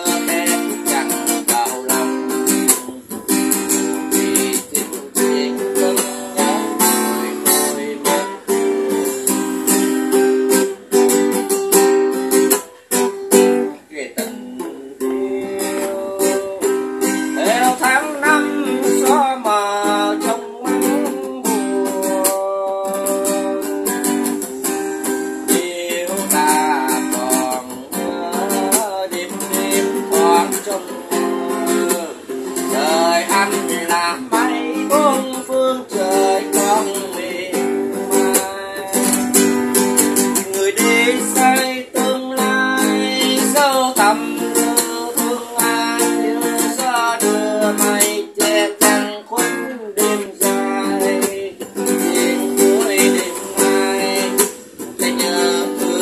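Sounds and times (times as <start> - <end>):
acoustic guitar strumming: 0.0 - 56.0
man singing: 0.0 - 56.0.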